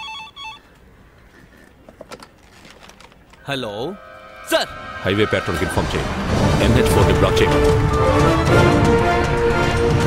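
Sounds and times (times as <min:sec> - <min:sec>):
telephone electronic ring: 0:00.0 - 0:00.7.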